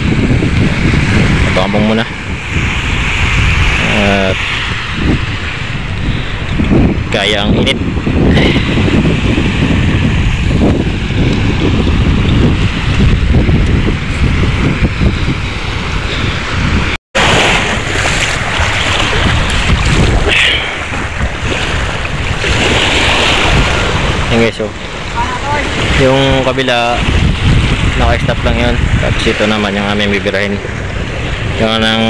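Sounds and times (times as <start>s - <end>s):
wind buffeting microphone: 0.0s - 32.0s
water splashing from wading: 17.2s - 26.1s
waves washing onto pebbles: 17.2s - 28.0s.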